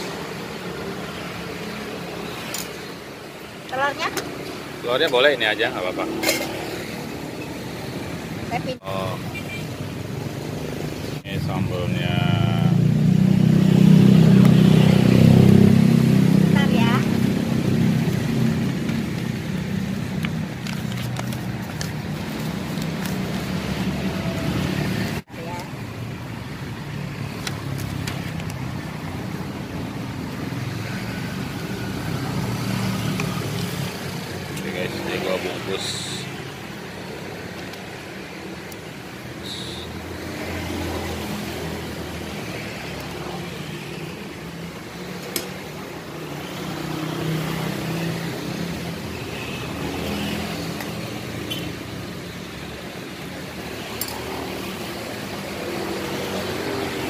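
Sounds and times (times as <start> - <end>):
road traffic: 0.0 - 57.0.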